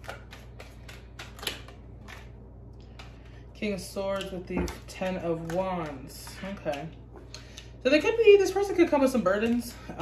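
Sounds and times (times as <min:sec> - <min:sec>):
cards being shuffled: 0:00.0 - 0:03.1.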